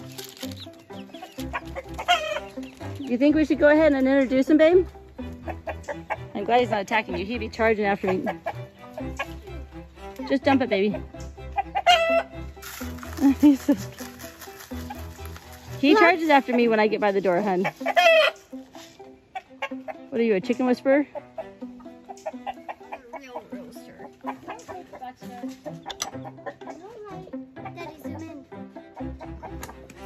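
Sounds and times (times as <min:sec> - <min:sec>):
background music: 0:00.0 - 0:30.0
chickens clucking: 0:00.0 - 0:30.0.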